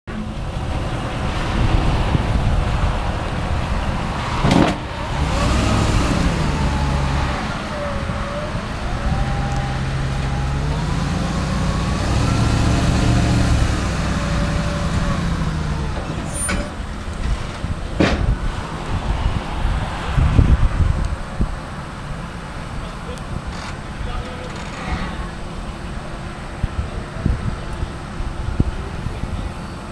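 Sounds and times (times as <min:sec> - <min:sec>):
pickup truck engine revving: 0:00.4 - 0:16.1
sharp knocks: 0:18.0 - 0:18.4.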